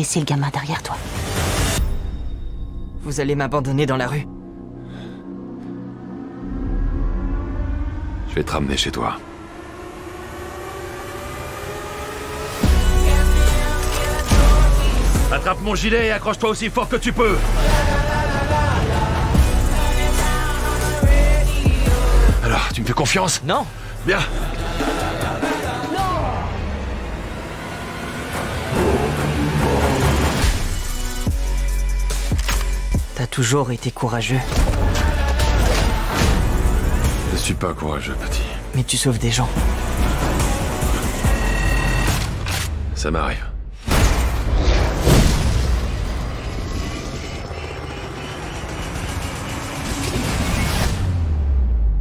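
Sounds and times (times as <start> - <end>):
trailer music: 0.0 - 52.0
helicopter rotor and engine rumble: 46.1 - 50.7.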